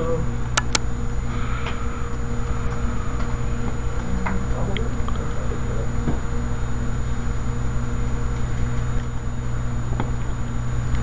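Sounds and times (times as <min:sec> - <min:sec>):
high-pitched whine: 0:00.0 - 0:11.0
low electrical hum: 0:00.0 - 0:11.0.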